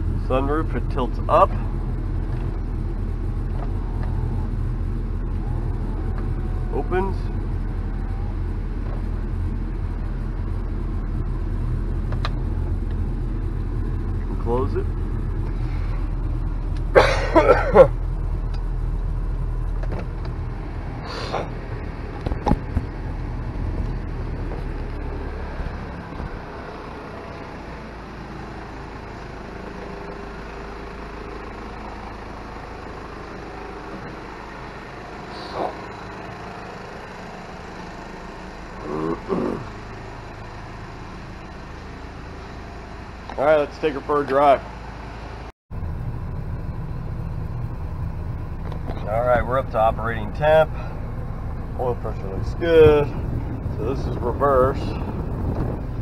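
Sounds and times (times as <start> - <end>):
diesel engine idling: 0.0 - 56.0.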